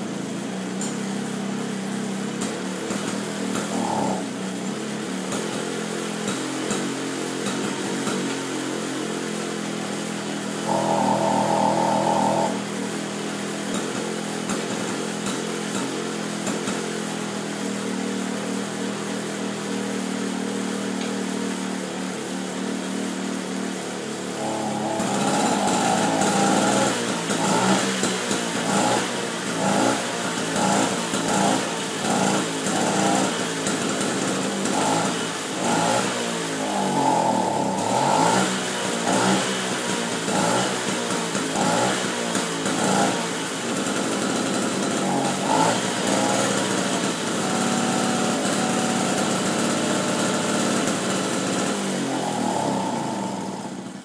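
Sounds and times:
moped engine revving: 0.0 - 54.0.

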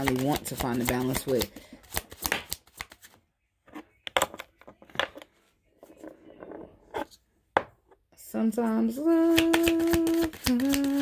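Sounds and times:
cards rustling on a table: 0.0 - 3.2, 9.4 - 11.0.

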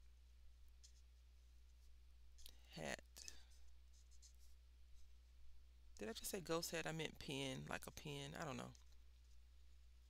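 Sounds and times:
marker scratching on paper: 3.9 - 5.2.

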